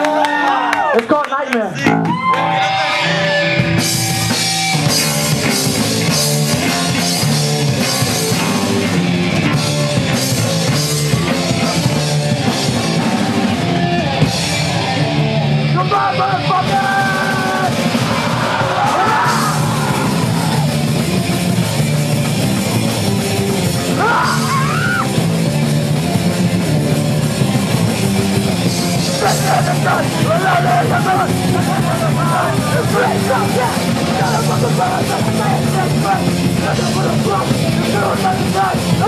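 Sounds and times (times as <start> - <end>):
yelled vocals: 1.4 - 39.0
bass guitar: 1.6 - 39.0
distorted electric guitar: 1.7 - 39.0
drums: 1.7 - 39.0.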